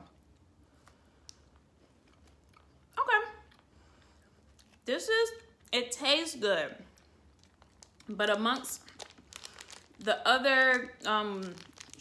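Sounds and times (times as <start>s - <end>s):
quiet chewing: 0.2s - 4.8s, 6.9s - 8.1s.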